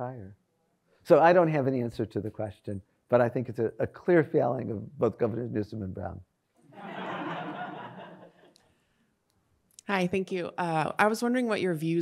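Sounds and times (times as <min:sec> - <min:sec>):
audience laughter: 0:06.8 - 0:08.4
woman speaking: 0:09.8 - 0:12.0.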